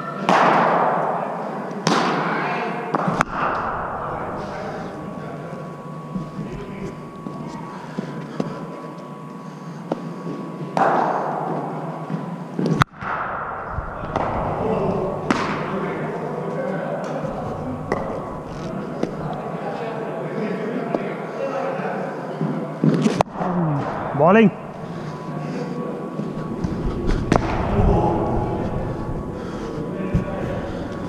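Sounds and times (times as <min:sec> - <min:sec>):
murmur of voices: 0:00.0 - 0:10.8, 0:13.7 - 0:31.0
cricket ball hitting bats and pads: 0:14.0 - 0:16.0.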